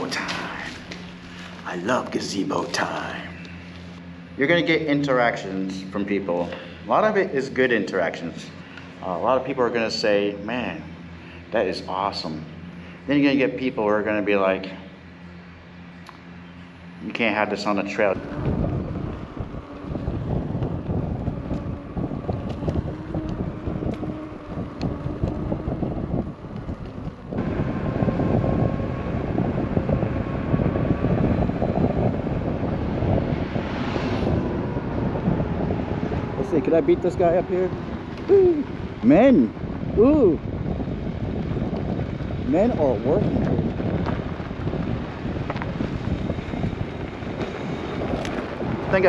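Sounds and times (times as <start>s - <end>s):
tyre rumbling on dirt road: 0.0s - 3.4s, 17.1s - 49.0s
wind buffeting microphone: 0.0s - 49.0s.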